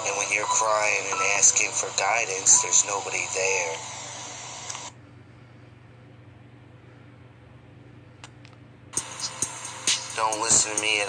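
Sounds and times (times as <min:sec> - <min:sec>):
faint low hum: 0:04.9 - 0:09.0
recording hiss: 0:09.0 - 0:11.0.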